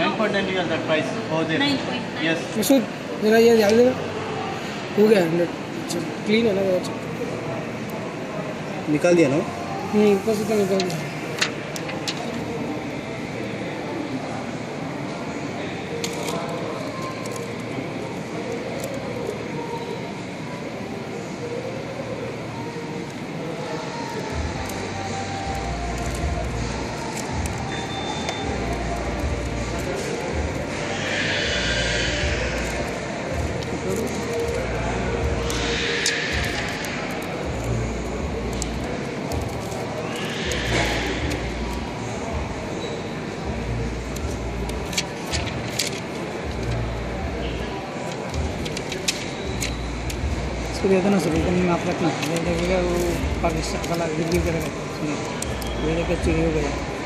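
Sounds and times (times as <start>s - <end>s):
steady rushing background din: 15.3s - 57.0s.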